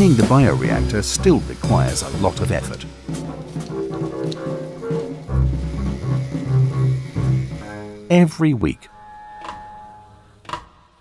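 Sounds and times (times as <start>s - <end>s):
held music note: 0.0s - 10.4s.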